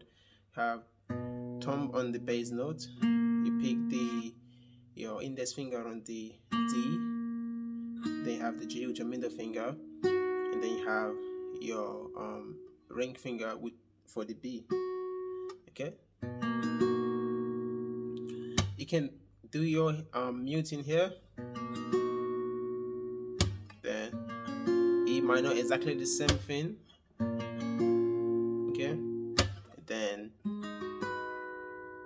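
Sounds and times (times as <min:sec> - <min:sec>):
acoustic guitar fingerpicked arpeggio: 0:01.1 - 0:04.8, 0:06.5 - 0:12.8, 0:14.7 - 0:15.6, 0:16.2 - 0:18.8, 0:21.4 - 0:26.6, 0:27.2 - 0:29.7, 0:30.4 - 0:32.0
sharp percussive click: 0:29.4 - 0:29.6.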